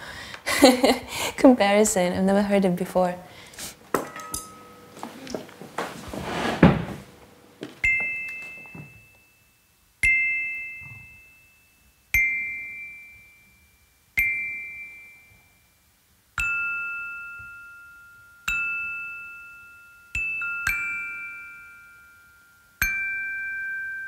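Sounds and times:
mallet percussion notes ringing: 0:04.0 - 0:05.3, 0:07.8 - 0:15.7, 0:16.4 - 0:24.0.

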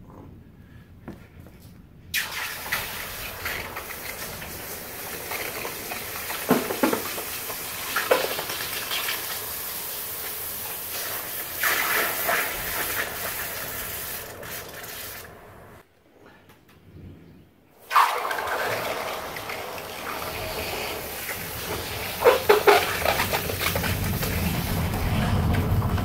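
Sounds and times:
hot metal sizzling in water: 0:02.2 - 0:15.4, 0:17.9 - 0:25.0.

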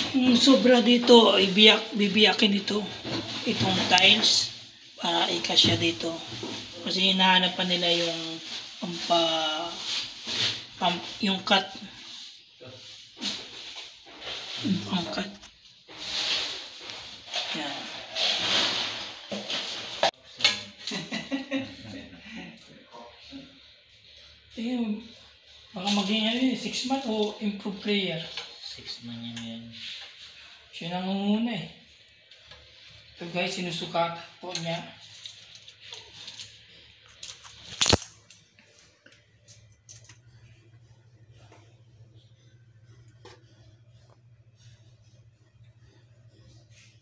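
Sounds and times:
hissing scrape: 0:15.9 - 0:20.2.

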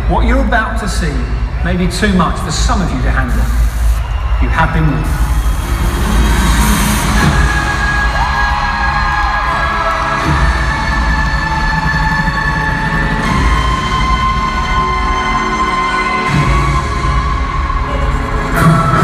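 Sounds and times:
crowd cheering and screaming: 0:00.0 - 0:19.0
loud intro music over pa: 0:05.1 - 0:19.0.

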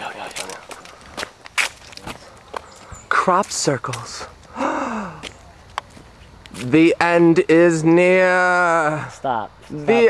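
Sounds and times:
footsteps on dirt trail: 0:00.0 - 0:06.8.

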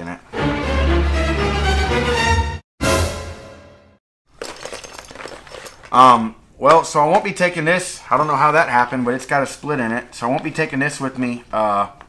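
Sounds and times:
dry bag crinkling: 0:04.3 - 0:06.2.

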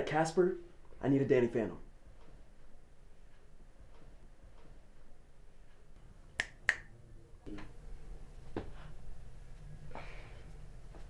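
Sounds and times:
finger snaps: 0:06.4 - 0:06.9.

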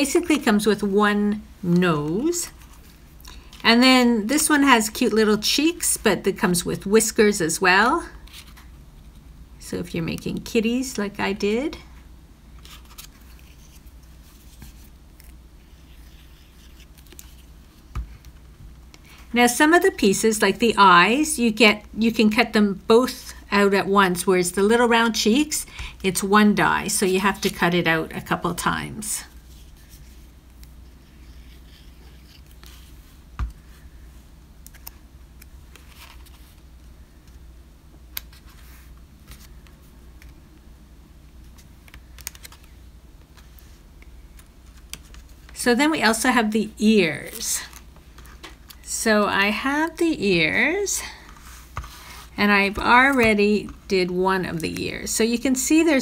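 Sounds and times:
low steady hum: 0:00.0 - 0:56.0
paper rustling and clicking: 0:41.6 - 0:42.8.

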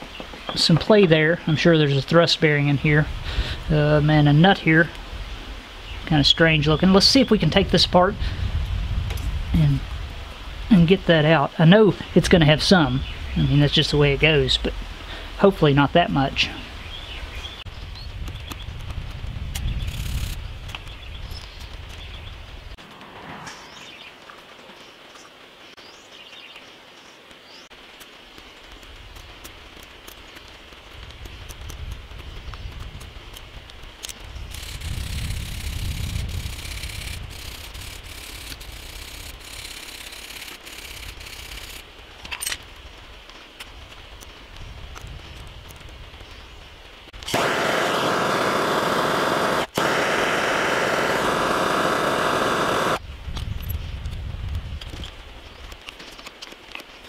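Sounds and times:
loud steady hiss: 0:33.5 - 0:44.8, 0:46.9 - 0:53.2.

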